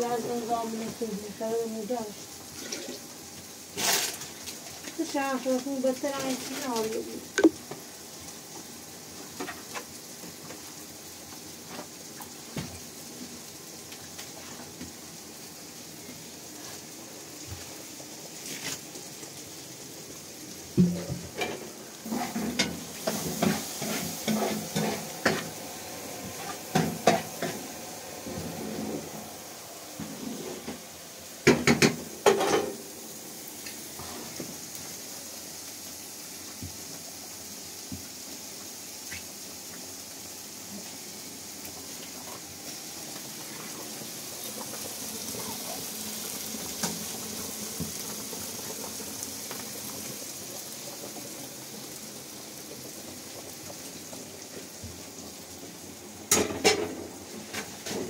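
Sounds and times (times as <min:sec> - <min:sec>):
frying hiss in a pan: 0:00.0 - 0:58.0
pots and utensils clattering: 0:02.5 - 0:03.1, 0:03.8 - 0:05.1, 0:20.7 - 0:29.2, 0:29.9 - 0:32.9, 0:56.3 - 0:58.0.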